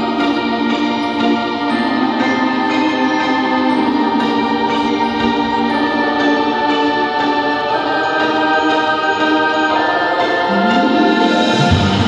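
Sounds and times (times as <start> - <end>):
choir singing sustained chords: 0.0 - 12.0.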